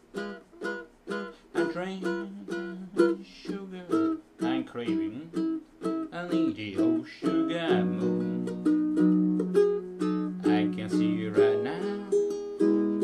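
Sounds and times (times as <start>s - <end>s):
ukulele strummed chords: 0.0s - 13.0s.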